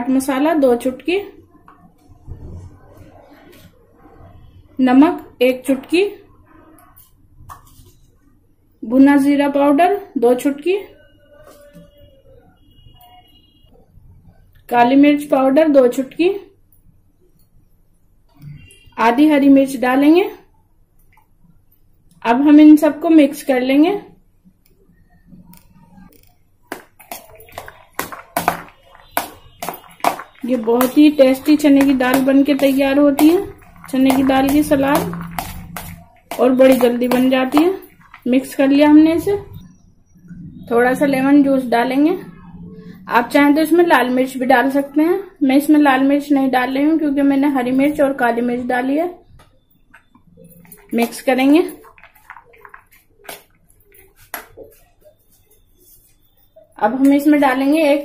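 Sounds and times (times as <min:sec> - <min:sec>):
spoon scraping bowl: 0:25.8 - 0:39.1, 0:50.1 - 0:56.3
wet salad tossing strokes: 0:26.7 - 0:38.3.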